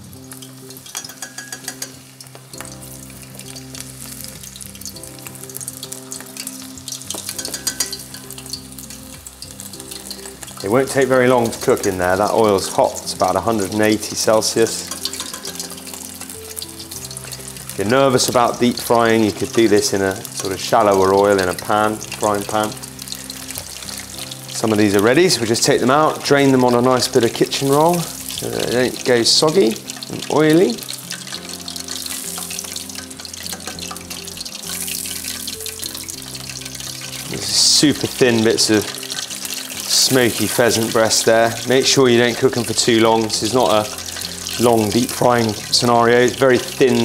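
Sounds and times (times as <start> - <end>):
food deep-frying in oil: 0.0 - 47.0
soft background music: 0.0 - 47.0.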